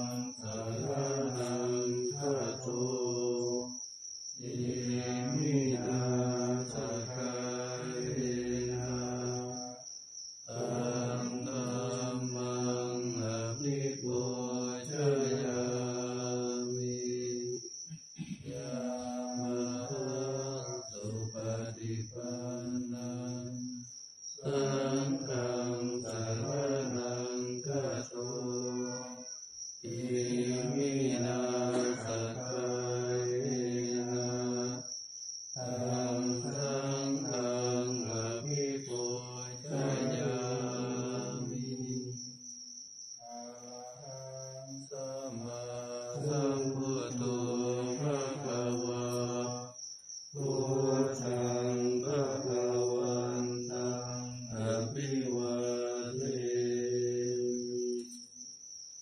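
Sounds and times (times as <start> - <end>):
monotone group chanting: 0.0 - 3.8, 4.4 - 9.9, 10.5 - 34.9, 35.6 - 42.4, 43.2 - 58.2.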